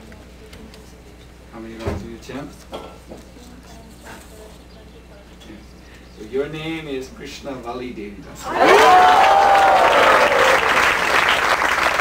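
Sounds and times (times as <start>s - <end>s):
quiet voices in a room: 0.0s - 10.2s
low electrical hum: 0.0s - 12.0s.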